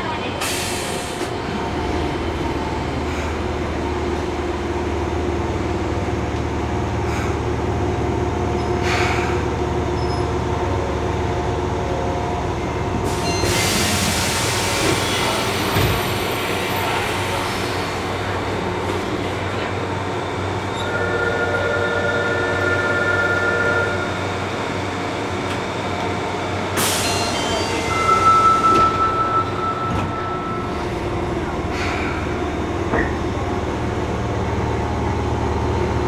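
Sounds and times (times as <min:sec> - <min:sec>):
train running low rumble: 0:00.0 - 0:36.0
wheel and rail hiss: 0:00.3 - 0:01.4, 0:13.1 - 0:18.5.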